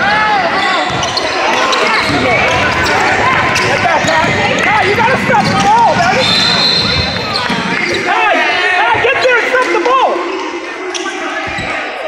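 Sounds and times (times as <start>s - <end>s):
players shouting and chatter: 0.0s - 12.0s
basketball bouncing on wood floor: 2.0s - 6.2s
referee's whistle: 6.1s - 8.1s.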